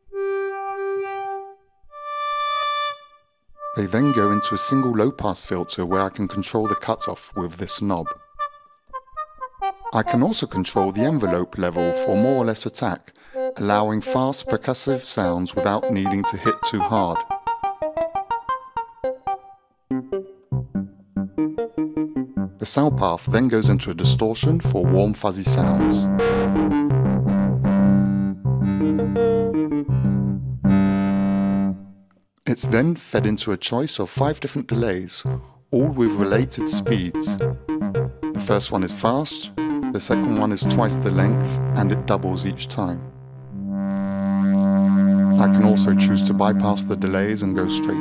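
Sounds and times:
synthesizer note with shifting tone: 25.8 - 31.8, 35.2 - 48.0.

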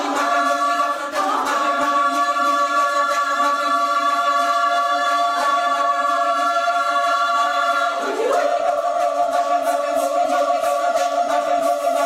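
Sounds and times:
women's choir singing: 0.0 - 12.0.

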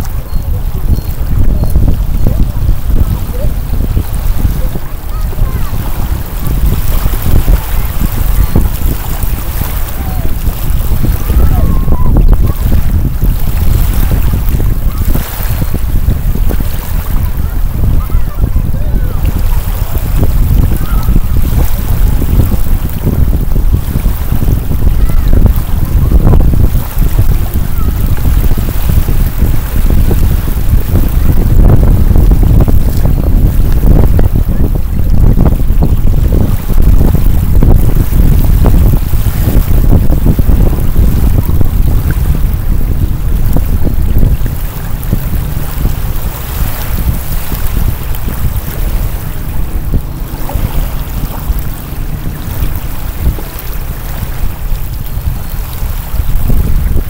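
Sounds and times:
lake waves lapping: 0.0 - 57.0
wind buffeting microphone: 0.0 - 57.0.

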